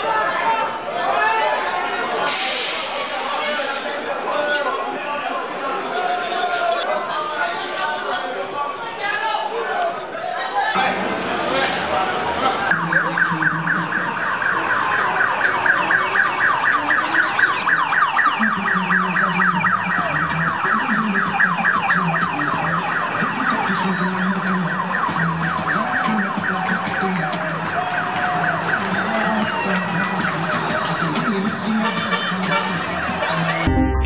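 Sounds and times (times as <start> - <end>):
siren fast yelp: 12.6 - 33.6.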